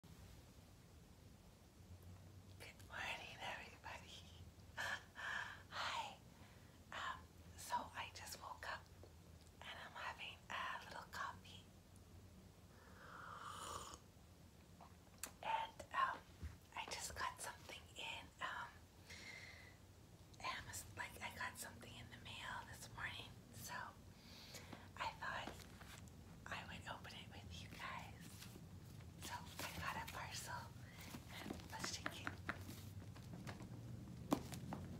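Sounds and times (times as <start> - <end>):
low steady hum: 0.0 - 34.9
woman whispering: 2.6 - 6.2, 6.9 - 8.9, 9.6 - 11.7, 15.2 - 18.8, 20.4 - 24.0, 24.9 - 25.7, 26.4 - 28.4, 29.2 - 32.5.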